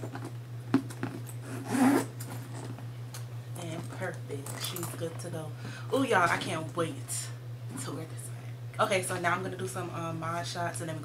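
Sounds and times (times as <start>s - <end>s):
steady low hum: 0.0s - 11.0s
leather rubbing scrape: 1.4s - 2.7s.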